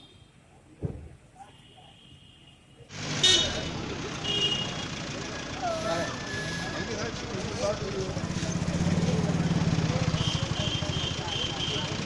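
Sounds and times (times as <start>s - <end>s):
traffic: 0.0s - 12.0s
crowd voices: 2.9s - 12.0s.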